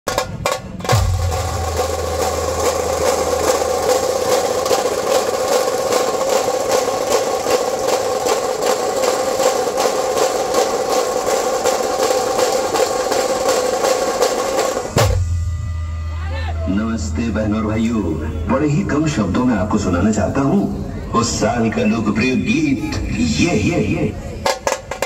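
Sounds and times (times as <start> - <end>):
tasha drums rapid roll: 0.1 - 16.0
dhol drum strikes: 0.1 - 16.1.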